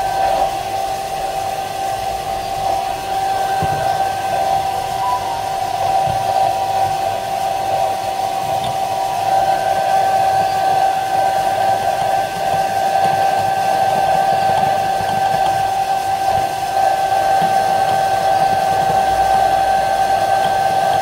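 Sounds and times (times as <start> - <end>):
hair dryer running: 0.0 - 21.0.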